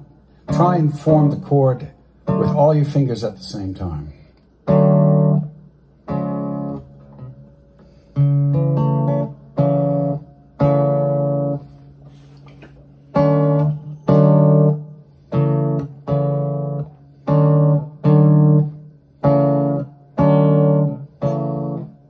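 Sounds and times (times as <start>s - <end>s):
classical guitar chords: 0.0s - 3.9s, 4.6s - 22.0s.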